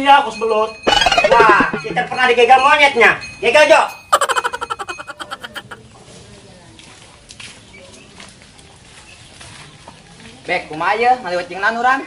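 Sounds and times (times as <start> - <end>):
fast rattling trill: 0.9 - 2.1, 3.9 - 5.8.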